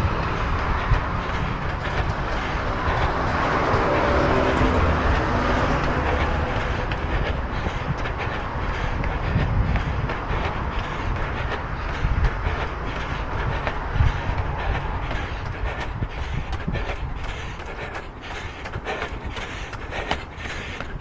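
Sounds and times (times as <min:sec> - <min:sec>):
road traffic: 0:00.0 - 0:21.0
running footfalls: 0:00.0 - 0:21.0
wind rumble on microphone: 0:00.0 - 0:21.0.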